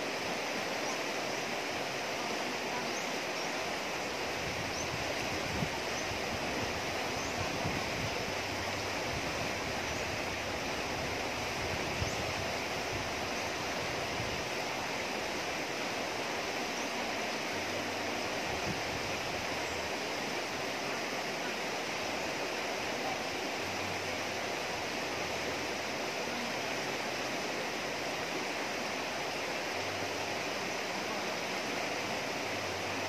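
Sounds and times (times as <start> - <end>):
river rushing over rocks: 0.0 - 33.0.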